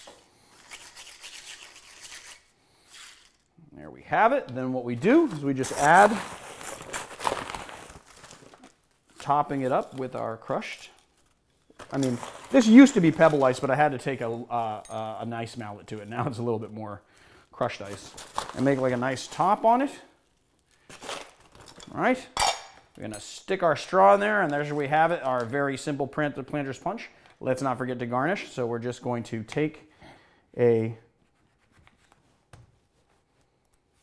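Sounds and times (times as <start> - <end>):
plastic bag crinkling: 5.0 - 14.6, 17.6 - 21.8.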